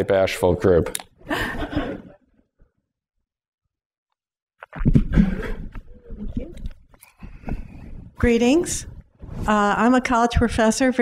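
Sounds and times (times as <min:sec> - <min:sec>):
microphone handling noise: 0:04.6 - 0:09.8
breath into microphone: 0:07.0 - 0:08.2.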